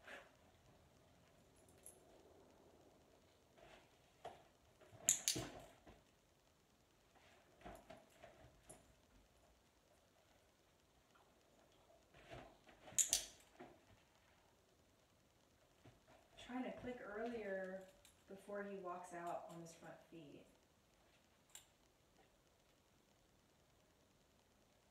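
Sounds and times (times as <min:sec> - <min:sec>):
sharp clicks: 0:05.1 - 0:05.5, 0:13.0 - 0:13.4.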